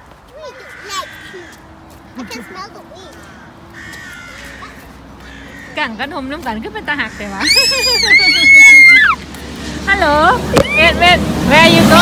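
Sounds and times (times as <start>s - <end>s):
crow cawing: 0.4s - 6.0s, 7.0s - 7.8s.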